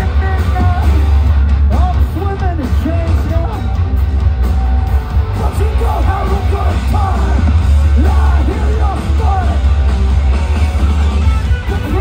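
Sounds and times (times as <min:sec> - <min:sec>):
booming bass: 0:00.0 - 0:12.0
drums: 0:00.0 - 0:12.0
electric guitars: 0:00.0 - 0:12.0
shouted vocals: 0:05.3 - 0:09.7.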